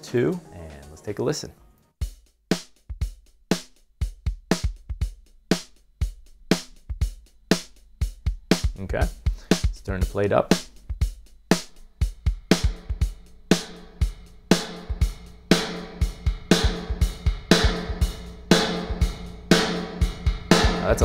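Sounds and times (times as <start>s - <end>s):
drum loop with heavy reverb: 2.0s - 21.0s.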